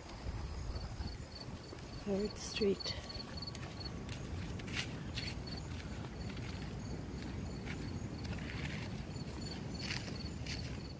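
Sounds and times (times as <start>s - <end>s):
night insects chirping: 0.0s - 10.9s.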